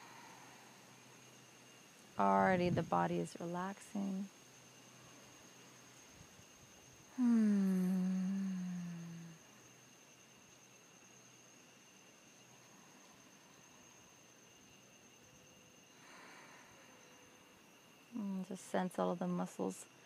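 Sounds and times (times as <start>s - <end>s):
woman humming: 7.1s - 9.4s.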